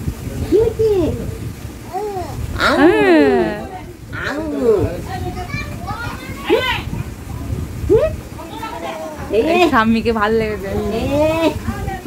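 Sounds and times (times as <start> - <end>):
infant cooing: 1.9 - 4.9
woman baby talk: 2.0 - 7.0, 7.9 - 12.0.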